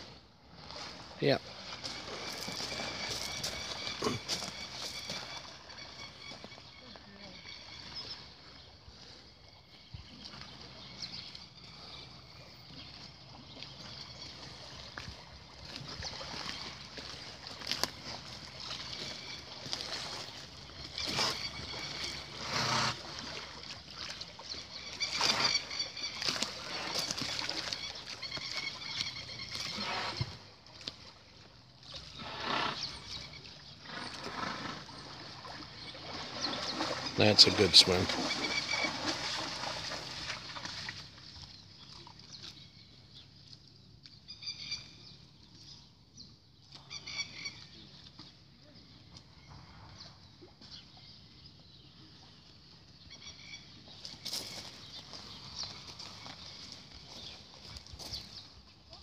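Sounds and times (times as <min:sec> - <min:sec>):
horse swimming splashing water: 0:00.0 - 0:59.0.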